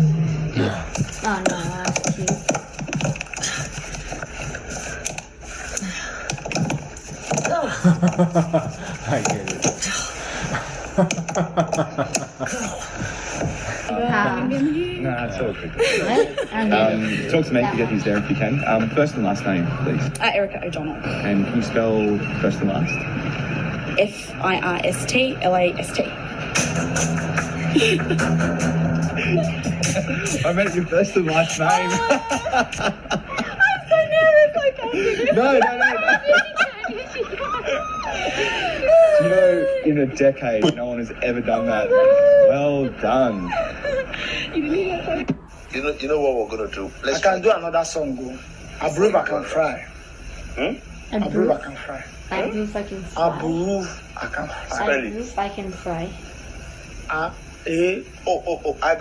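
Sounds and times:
voices: 0.0s - 5.0s, 7.3s - 59.0s
people laughing: 7.5s - 19.1s, 26.9s - 45.3s, 53.8s - 54.8s, 58.2s - 59.0s
music: 26.5s - 31.1s.

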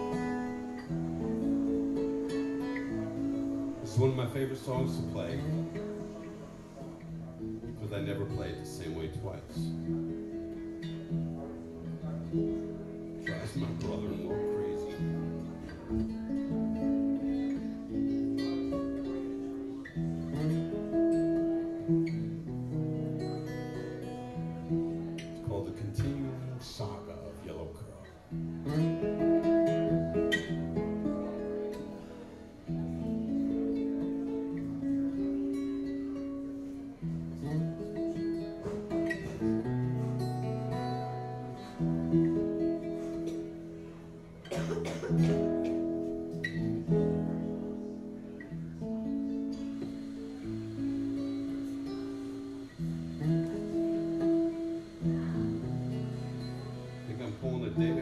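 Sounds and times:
acoustic guitar chords ringing: 0.0s - 58.0s.

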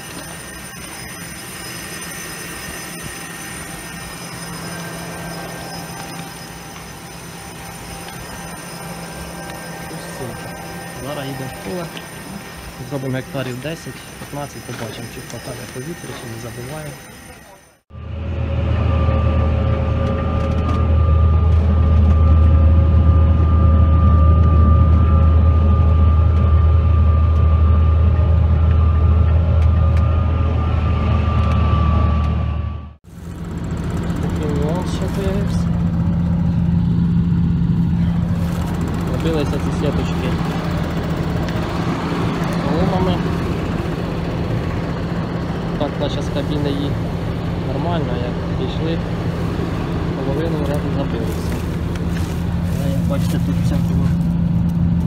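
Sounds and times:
high whine: 0.0s - 55.0s
tractor engine droning: 0.0s - 55.0s.

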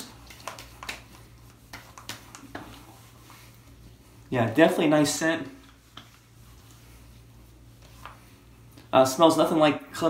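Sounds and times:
hands slapping face: 0.0s - 2.9s, 5.6s - 6.2s.

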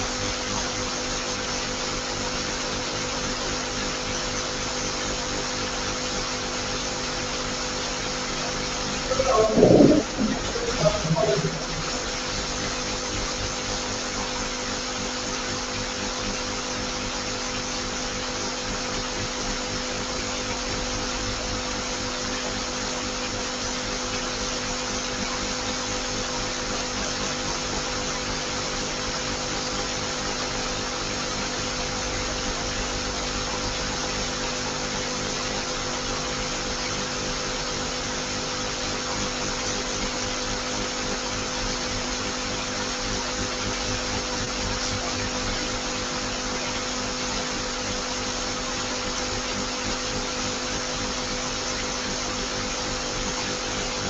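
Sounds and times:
faint low hum: 9.1s - 12.1s.

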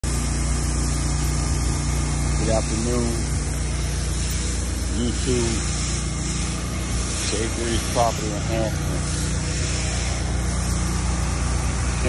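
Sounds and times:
pressure washer engine running: 0.0s - 12.0s
hiss of spray wand: 0.1s - 12.0s.

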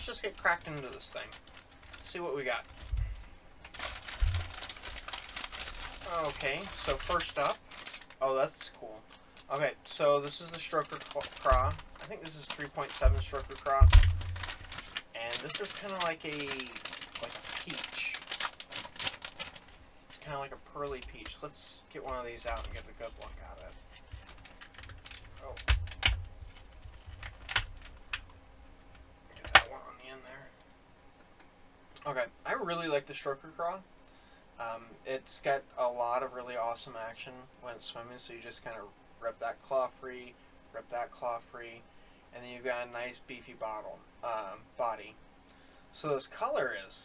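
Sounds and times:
hands rustling fabric sack: 0.0s - 8.2s
small clicks and crinkles: 0.0s - 9.6s, 10.3s - 29.7s
dull thump: 4.2s - 4.6s.

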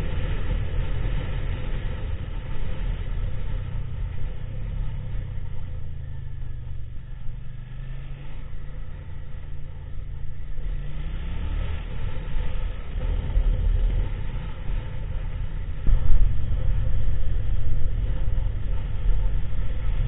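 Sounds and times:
motorcycle engine rumbling: 0.0s - 20.0s
road and wind noise: 0.0s - 20.0s.

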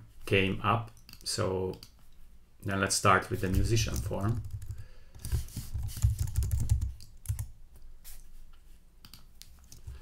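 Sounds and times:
typing on computer keyboard: 3.9s - 7.5s.

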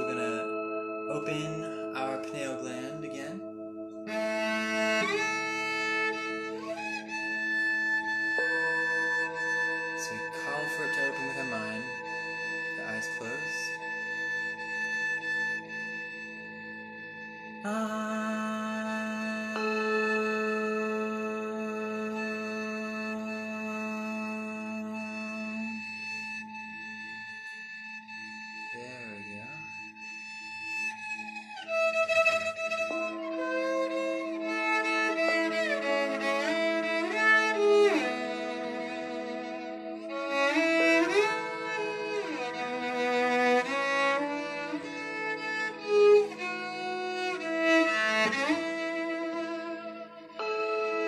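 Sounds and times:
bowed cello notes: 0.0s - 51.0s
ringing meditative drone: 0.0s - 51.0s.

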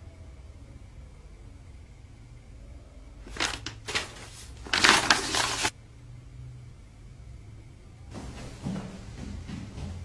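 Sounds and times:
paper rustling and sliding: 3.2s - 5.7s.

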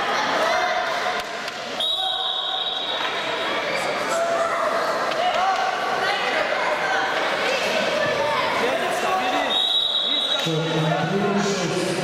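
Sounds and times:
people shouting in a hall: 0.0s - 11.0s.

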